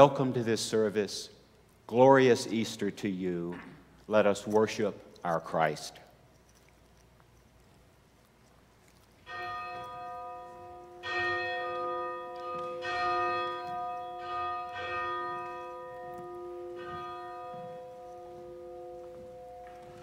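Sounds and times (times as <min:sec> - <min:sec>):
church bell ringing: 0:09.3 - 0:20.0.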